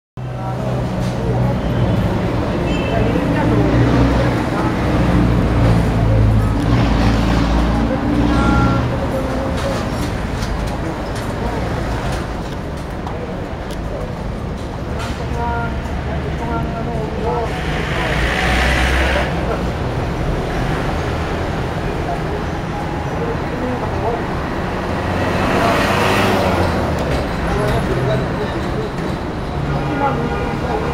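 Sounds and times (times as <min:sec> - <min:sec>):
background voices: 0:00.2 - 0:30.9
vehicle engine rumble: 0:00.2 - 0:30.9.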